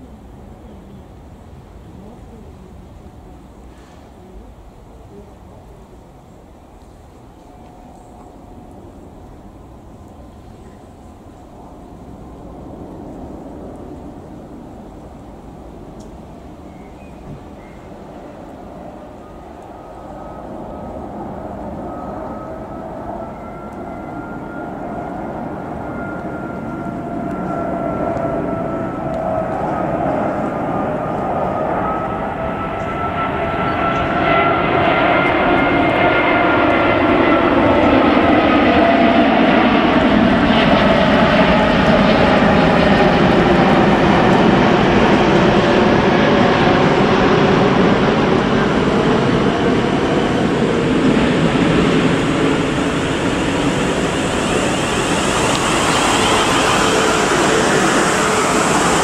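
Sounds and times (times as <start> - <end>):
jet airliner passing overhead: 0.0 - 59.0
wavering whistling tones: 21.7 - 28.0.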